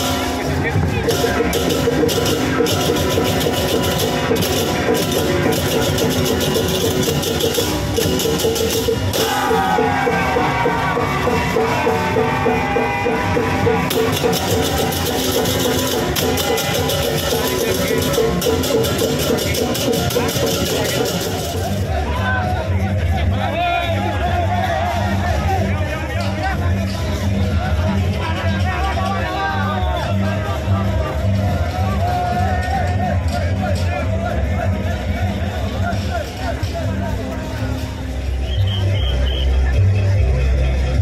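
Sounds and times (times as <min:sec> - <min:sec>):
crowd voices: 0:00.0 - 0:41.0
drums: 0:00.0 - 0:41.0
people shouting: 0:09.1 - 0:26.1, 0:27.5 - 0:37.1
gamelan playing: 0:13.5 - 0:21.8.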